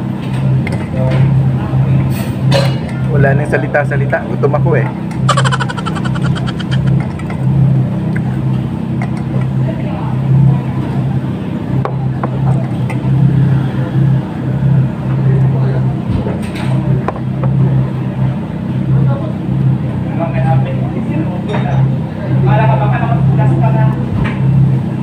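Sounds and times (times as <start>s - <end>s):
eating clicks: 5.3s - 7.0s
faint voices: 5.3s - 7.0s.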